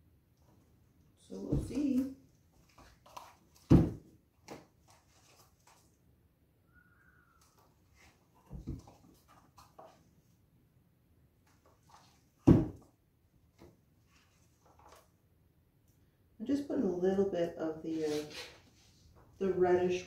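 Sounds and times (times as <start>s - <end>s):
faint squeak: 6.7s - 7.6s.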